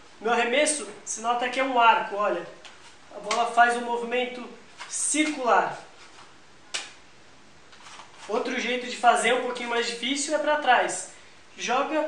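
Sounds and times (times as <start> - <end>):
ball slapping into palm: 6.7 - 7.0.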